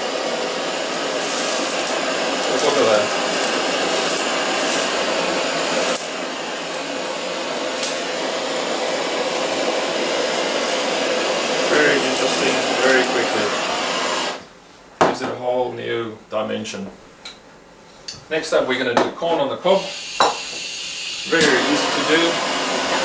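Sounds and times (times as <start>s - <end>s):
torch flame hissing: 0.0s - 14.5s, 19.7s - 23.0s.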